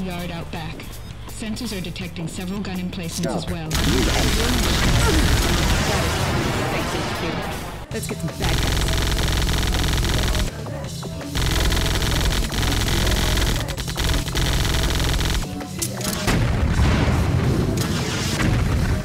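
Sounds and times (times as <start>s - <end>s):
automatic rifle firing bursts: 3.8s - 6.3s, 8.4s - 10.5s, 11.4s - 15.5s.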